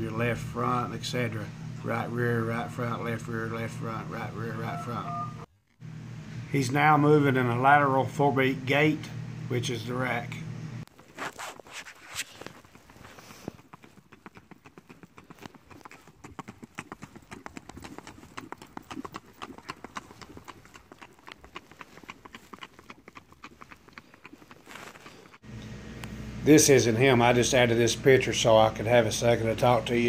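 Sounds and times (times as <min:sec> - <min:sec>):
horse hooves on hard lane: 0:12.5 - 0:25.4.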